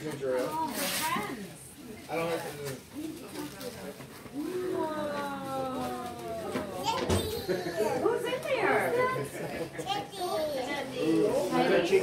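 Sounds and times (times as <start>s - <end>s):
children's voices: 4.4s - 8.2s, 8.8s - 10.9s.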